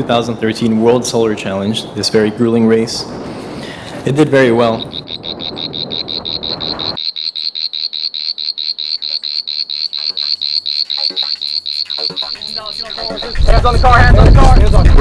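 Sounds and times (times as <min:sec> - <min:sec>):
animal pulsed call: 0:04.8 - 0:13.9
rushing noise: 0:12.2 - 0:15.0.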